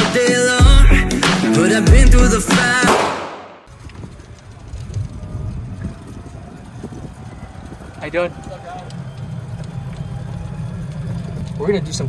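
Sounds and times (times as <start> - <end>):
golf cart driving rumble: 3.6 - 12.0
wind on microphone: 3.7 - 8.5.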